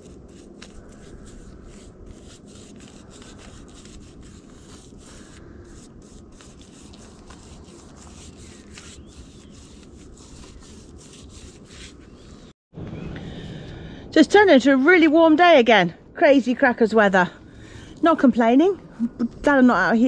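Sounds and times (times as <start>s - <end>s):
soft paintbrush strokes: 0.0s - 12.5s
steady low rumble: 12.8s - 20.0s.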